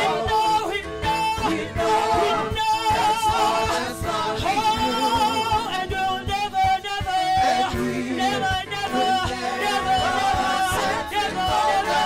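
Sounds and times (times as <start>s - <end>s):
band playing steady beat: 0.0s - 12.0s
woman singing gospel song: 1.4s - 12.0s.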